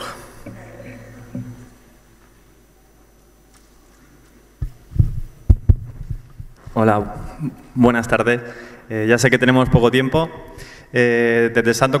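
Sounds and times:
microphone handling thumps: 4.6 - 7.4.

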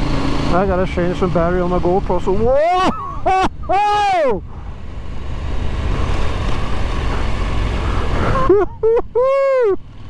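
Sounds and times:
person laughing: 2.6 - 3.9, 8.0 - 9.8
motorcycle riding on gravel: 4.5 - 8.4.

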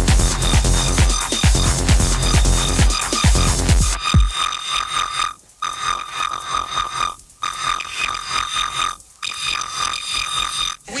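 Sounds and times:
pulsing alarm-like synth tone: 0.0 - 10.8.

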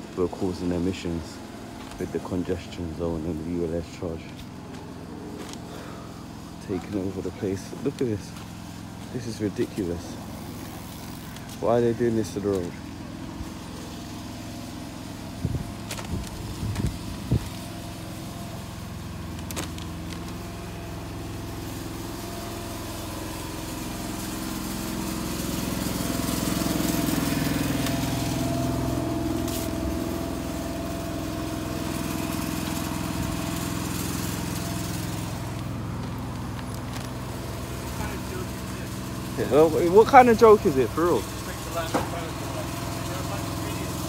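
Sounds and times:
truck engine idling: 0.0 - 44.0.

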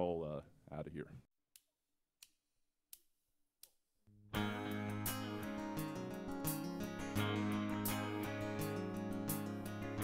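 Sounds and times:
country band with guitars: 4.4 - 10.0.

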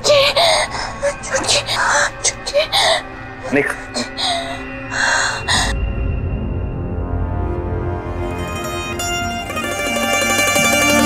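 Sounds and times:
deep low music drone: 0.0 - 11.0
soft dramatic background music: 0.0 - 11.0.

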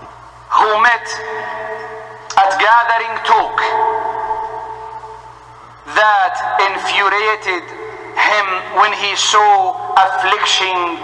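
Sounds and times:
man's voice echoing: 0.0 - 11.0.

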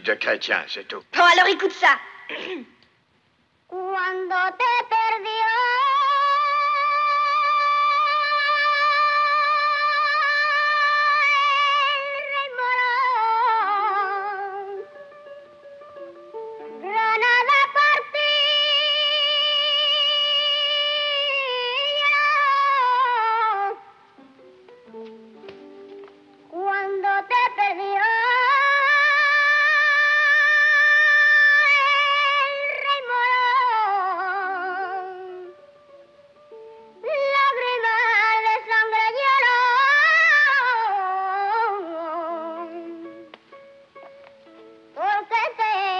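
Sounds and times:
boy singing: 3.7 - 14.9, 16.6 - 23.9, 24.9 - 35.7, 36.9 - 43.3, 45.0 - 45.9.

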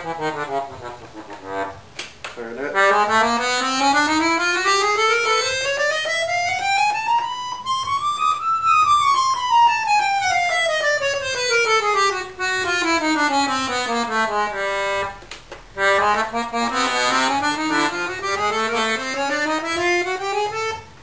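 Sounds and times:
accordion scale run: 0.0 - 21.0.

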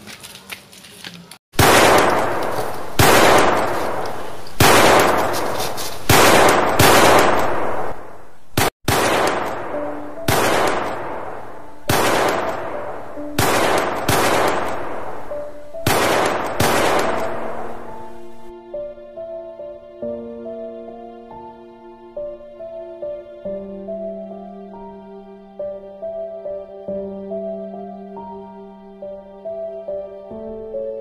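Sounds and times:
gunshots with echoing decay: 1.6 - 18.2.

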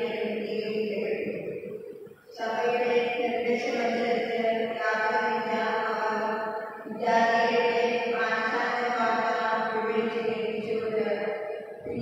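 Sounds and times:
woman chanting into microphone: 0.0 - 1.3, 2.3 - 6.3, 6.9 - 12.0.

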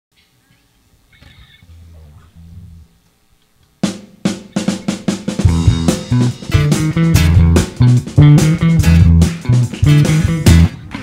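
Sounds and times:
faint low held notes: 1.3 - 3.4
low bass notes: 1.6 - 3.0, 4.6 - 10.8
snare and tom drum strikes: 3.8 - 11.0.

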